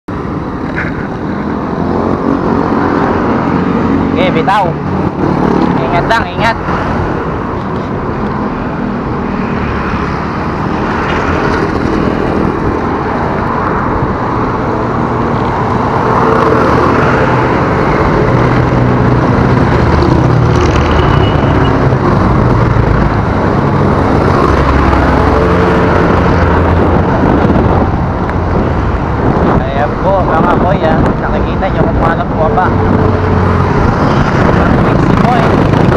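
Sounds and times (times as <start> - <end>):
bicycle road noise: 0.1 - 35.9
motor traffic passing: 0.1 - 35.9
wind rushing: 0.1 - 35.9.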